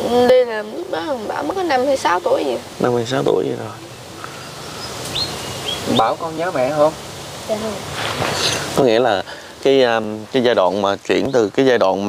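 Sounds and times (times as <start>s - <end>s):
outdoor background noise: 0.0s - 12.0s
high bird chirps: 3.7s - 7.1s.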